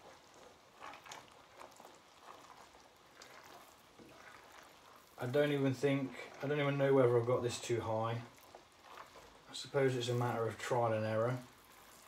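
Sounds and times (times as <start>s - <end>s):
honey bubbling and popping: 0.0s - 12.0s.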